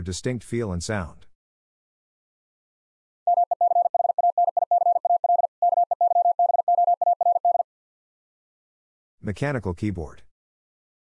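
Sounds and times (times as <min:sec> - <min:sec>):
morse code beeps: 0:03.3 - 0:07.6.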